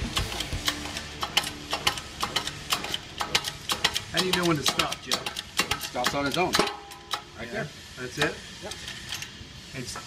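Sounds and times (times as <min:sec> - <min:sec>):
sharp metallic clicks: 0:00.0 - 0:07.3.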